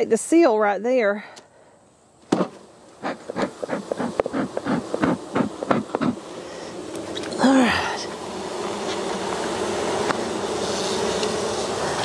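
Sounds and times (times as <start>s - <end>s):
bellows smoker puffing: 2.3s - 6.9s.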